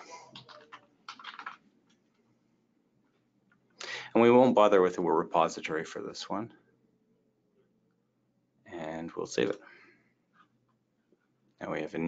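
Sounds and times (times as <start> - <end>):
typing on computer keyboard: 0.3 - 1.6.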